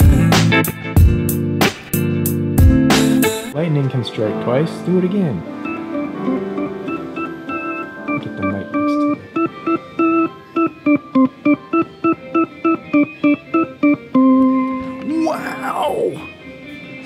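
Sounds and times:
organ playing chords: 0:00.0 - 0:15.6.

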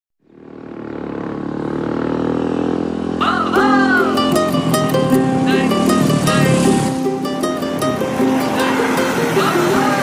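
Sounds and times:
music with a voice: 0:03.3 - 0:07.1, 0:07.9 - 0:10.0.

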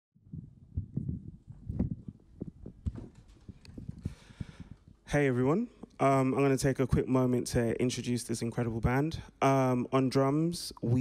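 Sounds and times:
microphone handling knocks: 0:00.8 - 0:05.0.

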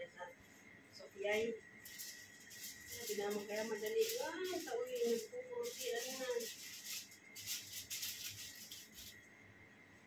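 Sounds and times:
comb and brush rustling through hair: 0:01.8 - 0:09.2.

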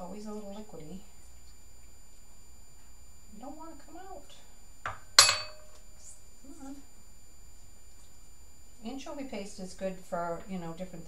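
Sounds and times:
metal spoon clinking bowl: 0:05.2 - 0:05.8.

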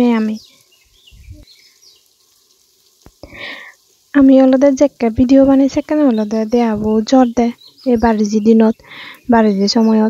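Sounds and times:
faint bird chirps: 0:00.0 - 0:02.4, 0:03.2 - 0:10.0
soft low thumps: 0:05.2 - 0:07.3.

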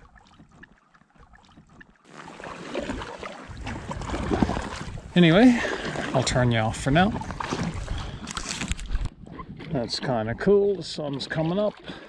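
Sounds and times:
water sloshing and dripping: 0:00.0 - 0:12.0
wind rumble on microphone: 0:03.5 - 0:05.2.

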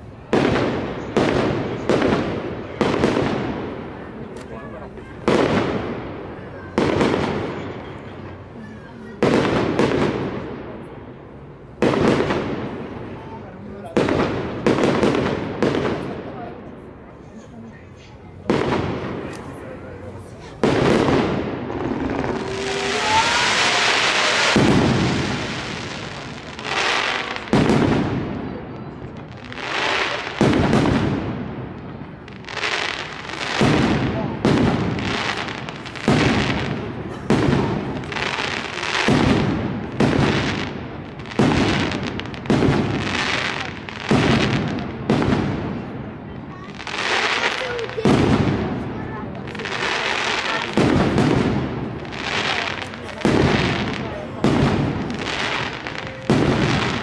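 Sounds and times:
fireworks bursting with bangs: 0:00.0 - 0:57.0
firework hissing and whistle: 0:21.7 - 0:27.4.

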